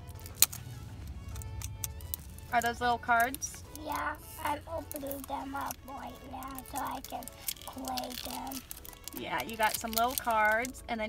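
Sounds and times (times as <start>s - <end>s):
low car cabin rumble: 0.0s - 7.2s
card packet crackling open: 0.0s - 10.8s.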